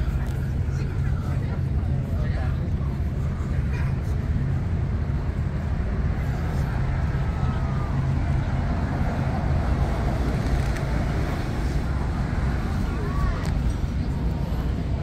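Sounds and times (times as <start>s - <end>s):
city road traffic rumble: 0.0s - 15.0s
faint voices of passers-by: 0.0s - 15.0s.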